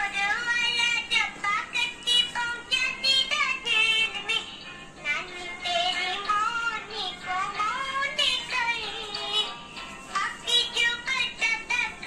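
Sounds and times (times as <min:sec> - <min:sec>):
children's song with accompaniment: 0:00.0 - 0:12.0.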